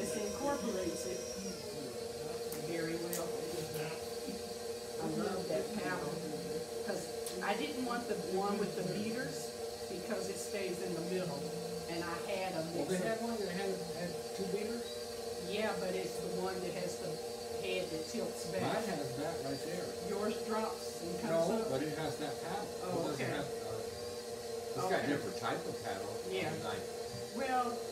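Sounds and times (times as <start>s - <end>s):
stand mixer humming: 0.0s - 27.9s
two people talking: 0.0s - 27.9s.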